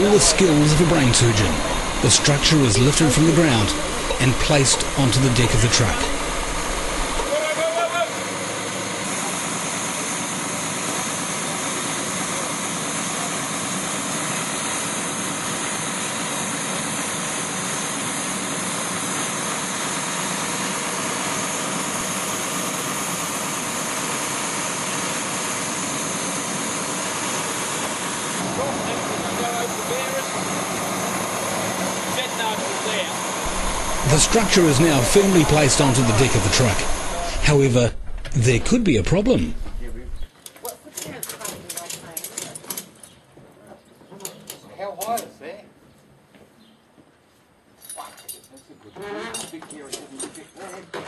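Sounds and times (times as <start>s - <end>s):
truck engine running: 0.0s - 12.5s, 17.2s - 40.3s
faint voices: 33.5s - 40.2s.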